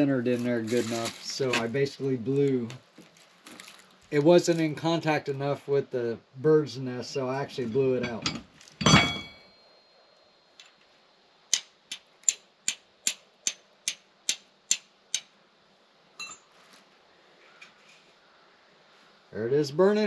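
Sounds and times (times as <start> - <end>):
ringing metal clink: 8.0 - 10.0, 16.2 - 16.5
flint striking steel: 11.5 - 15.4.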